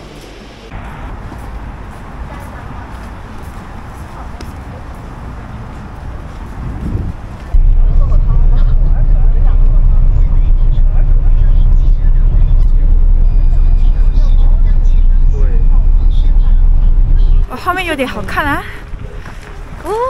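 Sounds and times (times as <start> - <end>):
bus engine and road rumble: 0.0 - 20.0.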